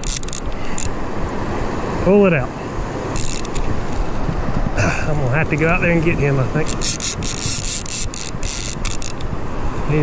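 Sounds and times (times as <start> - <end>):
fishing reel clicks: 0.0 - 1.0, 3.2 - 3.6, 6.6 - 9.3
river water rushing: 0.0 - 10.0.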